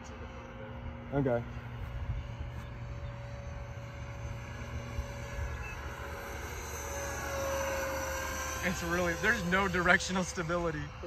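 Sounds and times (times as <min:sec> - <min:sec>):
electric ducted fan whining: 0:00.0 - 0:11.0.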